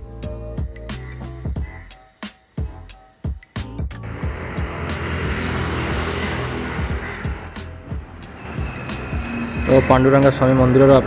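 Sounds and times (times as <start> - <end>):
background music with steady beat: 0.0 - 11.0
loud rushing engine passing by: 4.0 - 11.0
man talking: 9.7 - 11.0.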